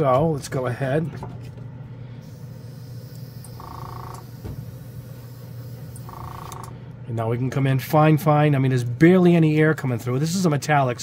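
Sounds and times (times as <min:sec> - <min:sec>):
compressor humming: 0:00.0 - 0:11.0.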